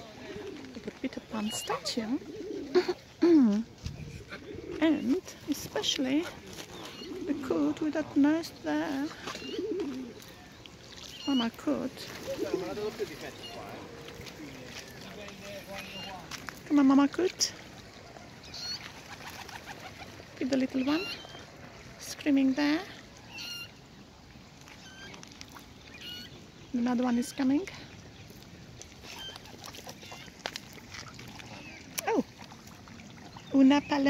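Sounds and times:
pigeon cooing: 0.0 - 10.5, 12.0 - 16.1.

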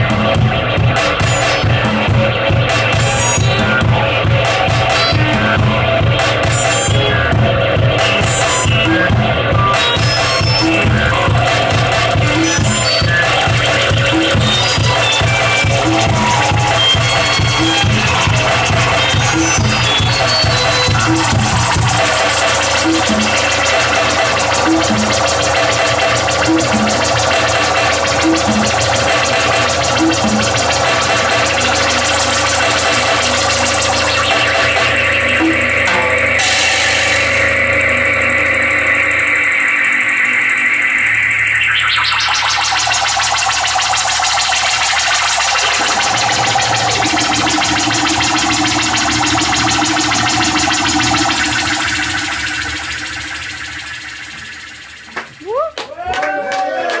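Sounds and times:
synth-punk music with drums: 0.0 - 55.8
long falling synth sweep: 3.8 - 56.1.

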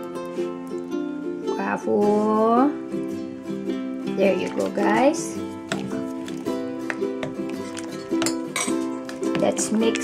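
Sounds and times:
plucked background music: 0.0 - 10.0
spoon clinking in ceramic pot: 6.9 - 9.2.

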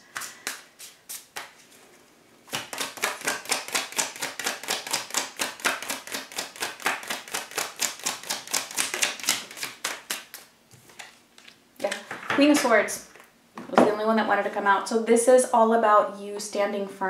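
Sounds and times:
cards shuffling and slapping: 0.0 - 1.8, 2.5 - 12.2.

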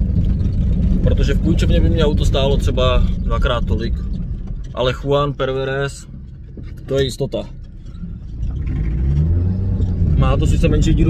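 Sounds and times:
car engine accelerating: 0.0 - 11.0
deep exhaust rumble: 0.0 - 11.0.

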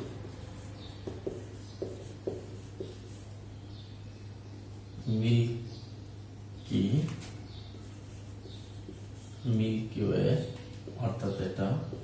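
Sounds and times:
marker pen writing on whiteboard: 0.0 - 3.4, 7.1 - 9.6, 10.4 - 12.0.

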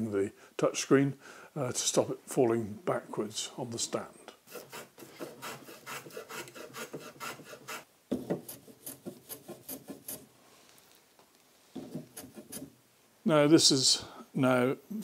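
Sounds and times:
block plane shaving wood: 4.5 - 7.8, 8.4 - 10.2, 11.8 - 12.7.

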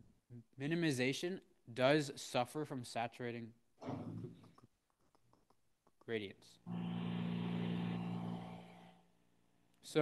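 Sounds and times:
droning hum with overtones: 6.7 - 9.2.

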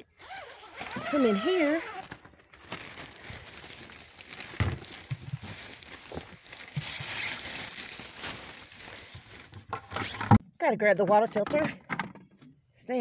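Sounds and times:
fabric rustling: 0.4 - 10.2.

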